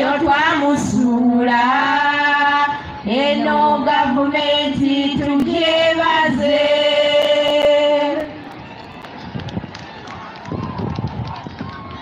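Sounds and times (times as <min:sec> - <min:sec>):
women singing together: 0:00.0 - 0:08.4.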